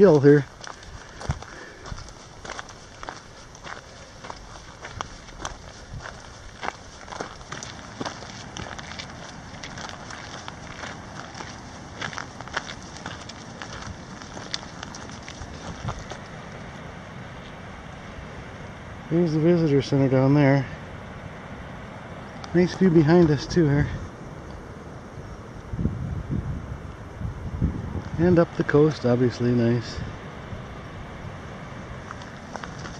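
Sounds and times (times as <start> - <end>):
footsteps on gravel trail: 0.0 - 17.7, 31.5 - 32.9
wind noise: 0.0 - 32.9.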